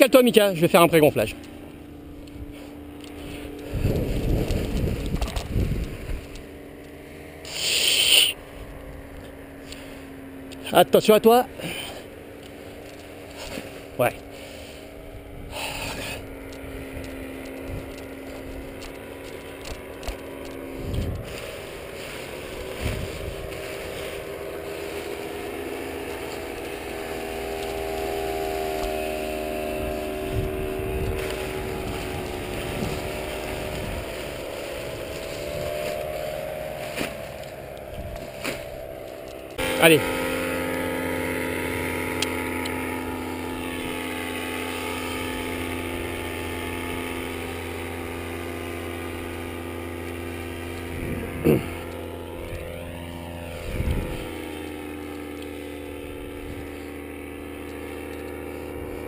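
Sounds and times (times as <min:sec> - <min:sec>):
paramotor engine idling: 0:00.0 - 0:59.0.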